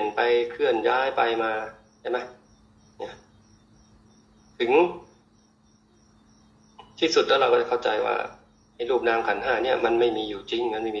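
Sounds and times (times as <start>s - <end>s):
man talking: 0.0s - 2.4s, 4.6s - 5.1s, 7.0s - 11.0s
faint high-pitched chirping: 0.0s - 11.0s
low steady hum: 0.0s - 11.0s.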